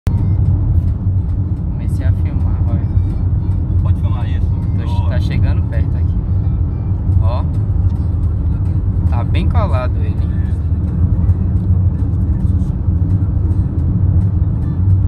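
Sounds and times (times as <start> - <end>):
car engine and tyres rumbling: 0.1 - 15.0.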